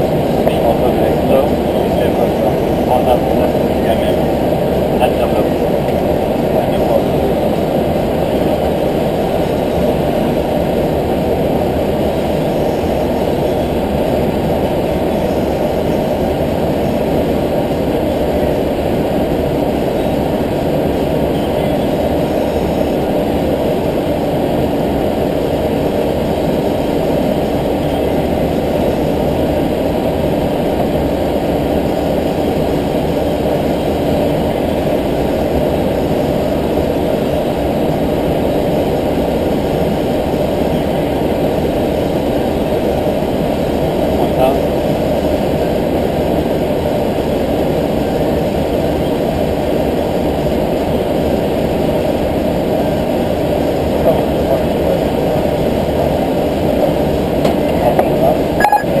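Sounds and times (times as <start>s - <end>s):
airliner cockpit engine and airflow: 0.0s - 59.0s.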